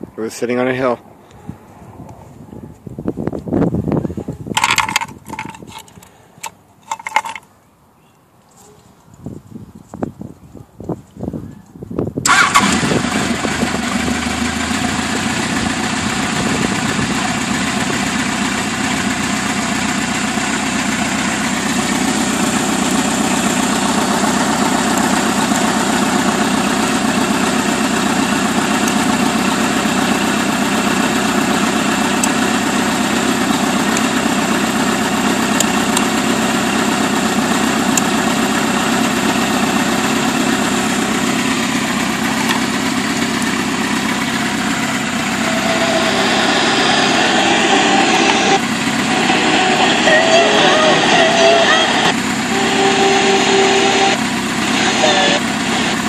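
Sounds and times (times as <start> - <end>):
brighter engine sound: 12.3 - 56.0
motorcycle engine idling: 12.3 - 56.0.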